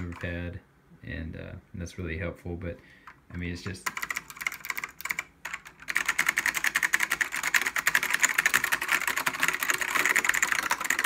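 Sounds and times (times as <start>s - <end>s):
mechanical keyboard typing: 0.0s - 0.3s, 3.3s - 11.0s.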